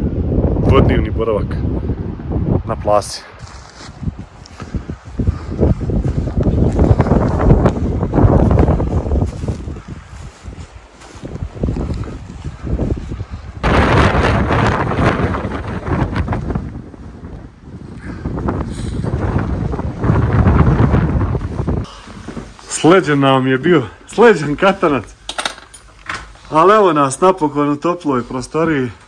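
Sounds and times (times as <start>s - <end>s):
wind buffeting microphone: 0.0s - 25.3s.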